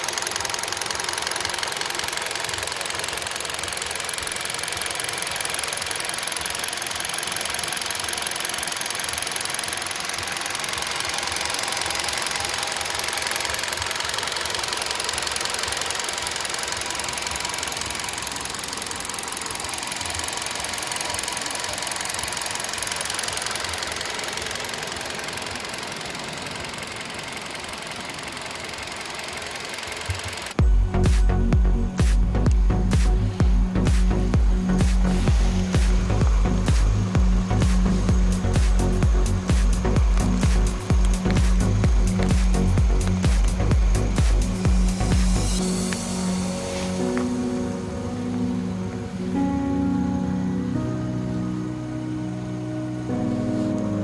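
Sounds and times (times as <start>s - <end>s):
car engine idling with ticking: 0.0s - 46.4s.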